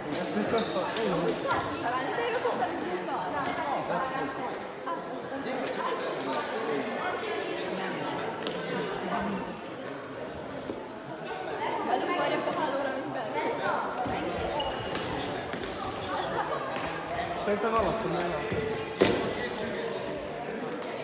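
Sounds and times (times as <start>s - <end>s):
people talking at once: 0.0s - 21.0s.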